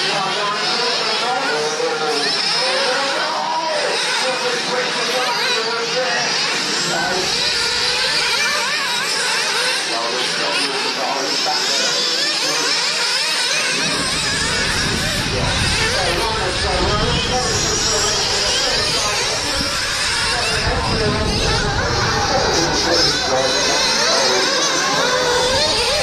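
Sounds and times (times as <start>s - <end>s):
rc car engines whining: 0.0s - 26.0s
low rumble: 13.8s - 23.5s.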